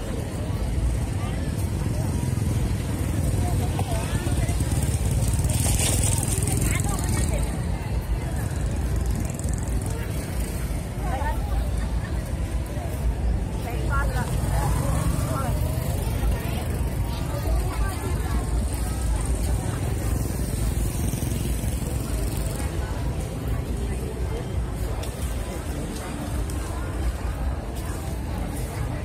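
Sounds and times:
crowd chatter: 0.0s - 29.0s
motorbikes: 0.0s - 29.0s
road traffic rumble: 0.0s - 29.0s.

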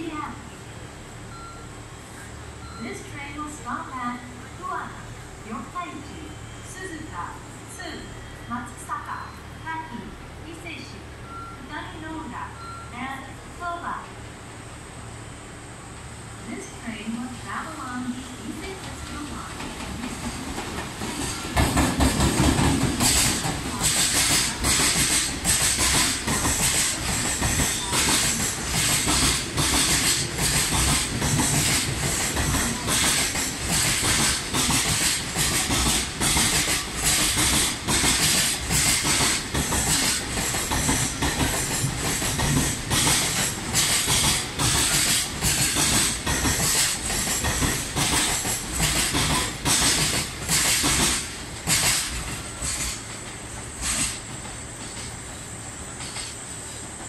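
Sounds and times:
public-address announcement voice: 2.6s - 14.2s, 16.4s - 19.8s
train wheels clattering over rail joints: 19.6s - 57.0s.

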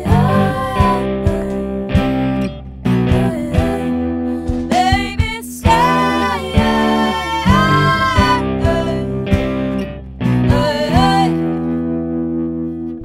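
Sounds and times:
person singing: 0.0s - 2.4s, 3.1s - 9.6s, 10.4s - 11.8s
bass: 0.0s - 13.0s
electric guitar chords: 0.0s - 13.0s.

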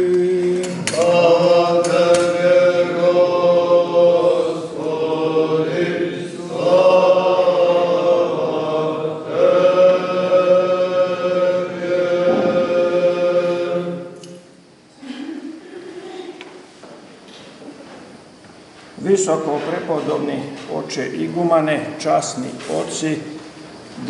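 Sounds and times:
liturgical chant singing: 0.0s - 14.7s.

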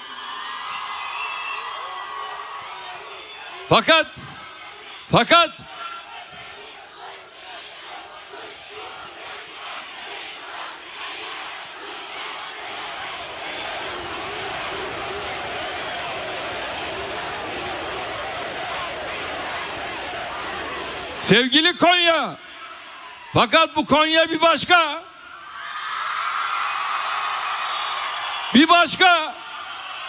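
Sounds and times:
crowd shouting and chanting: 0.0s - 30.0s.

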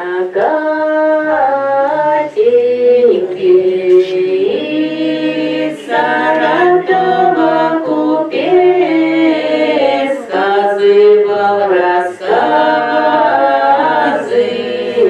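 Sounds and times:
women singing unaccompanied: 0.0s - 15.0s.

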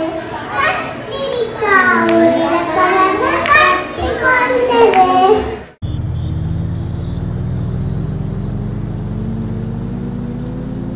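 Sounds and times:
low engine-like drone: 5.7s - 10.9s
faint rising tone: 5.8s - 10.9s.

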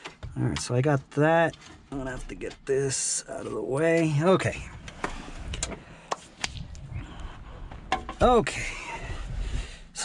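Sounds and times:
knocks and clicks of handling: 0.0s - 6.7s, 7.7s - 8.4s.

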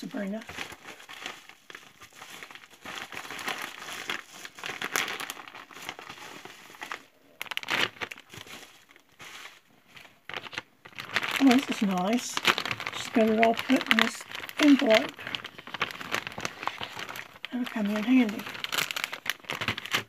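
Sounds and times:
paper crinkling and rustling: 0.0s - 20.0s.

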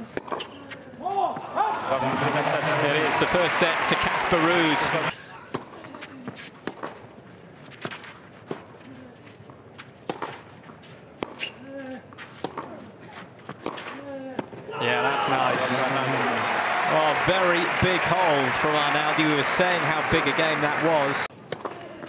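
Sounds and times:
ball bouncing on clay court: 0.0s - 0.6s, 5.5s - 7.0s, 9.6s - 10.5s, 11.2s - 12.8s, 21.4s - 22.0s
crowd murmur: 1.9s - 5.1s, 15.0s - 21.3s
tennis ball struck by racket: 10.0s - 10.4s.

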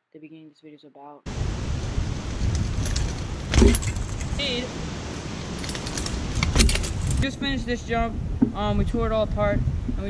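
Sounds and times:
rumbling outdoor noise: 1.3s - 10.0s.

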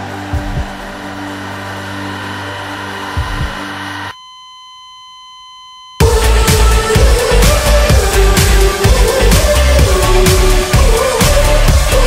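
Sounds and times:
buzzing drone: 0.0s - 4.2s
low thumps: 3.2s - 3.6s.

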